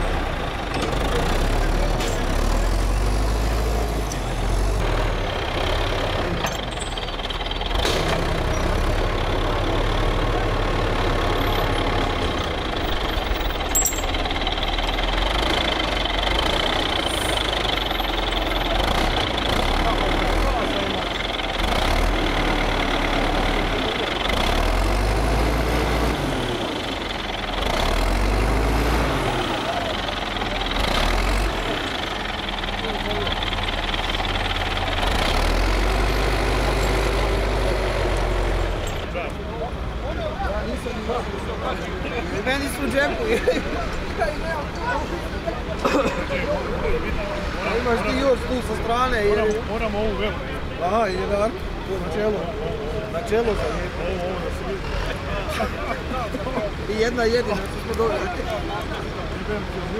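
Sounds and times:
diesel engine running and revving: 0.0s - 59.9s
murmur of voices: 14.8s - 24.9s, 29.0s - 35.1s, 36.6s - 59.9s.

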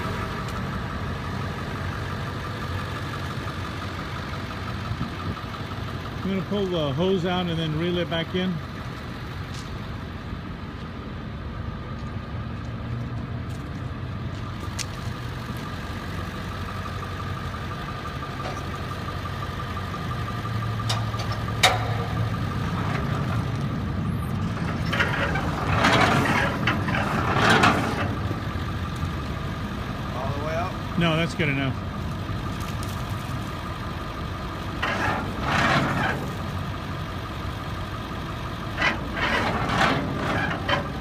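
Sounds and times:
truck engine idling: 0.0s - 41.0s
hose scraping across gravel: 24.6s - 28.2s.

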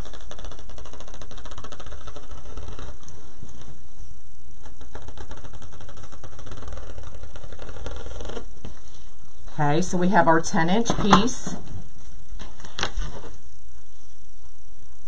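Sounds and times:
steady background hum: 0.0s - 15.0s.

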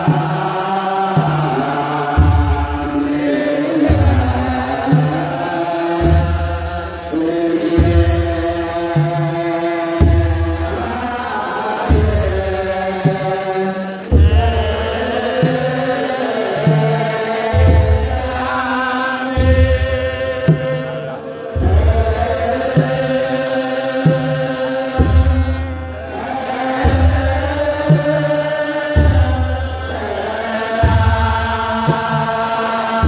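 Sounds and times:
men chanting in unison: 0.0s - 33.0s.

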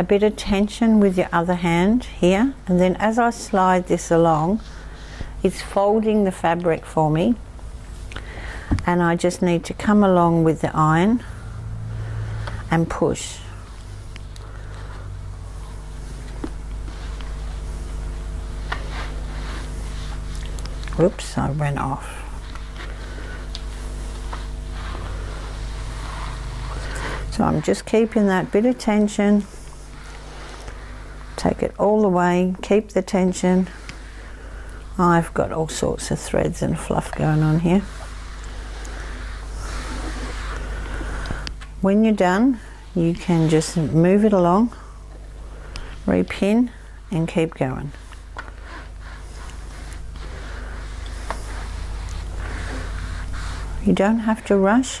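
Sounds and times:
steady low hum: 0.0s - 55.0s
iron rubbing on fabric: 8.9s - 20.4s, 21.0s - 55.0s.

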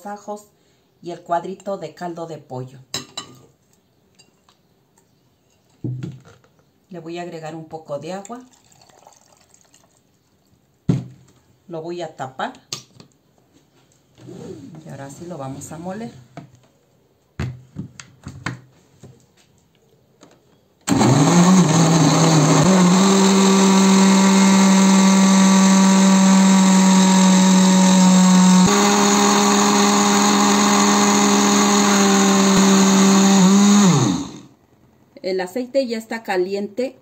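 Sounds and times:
blender motor running: 20.9s - 34.5s.

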